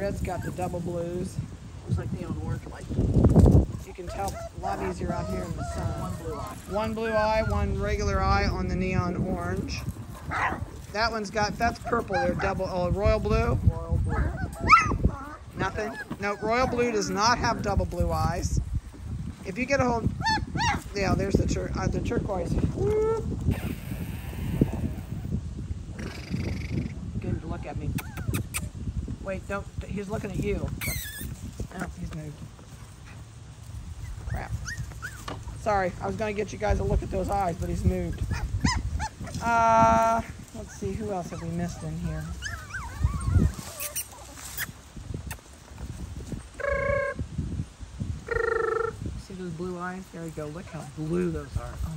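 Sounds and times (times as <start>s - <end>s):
rustling in dry leaves: 0.0s - 27.2s, 28.7s - 51.9s
puppies grunting and growling: 3.9s - 9.1s, 9.7s - 18.2s, 40.6s - 44.7s
puppy whine: 4.2s - 7.8s, 34.0s - 35.3s, 41.4s - 44.8s.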